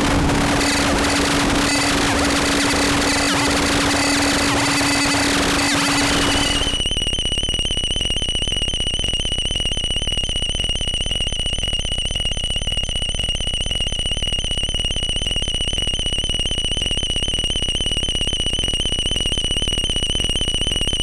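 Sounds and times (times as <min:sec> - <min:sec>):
dense rapid buzz: 0:00.0 - 0:07.0
high wavering tone: 0:00.4 - 0:07.1.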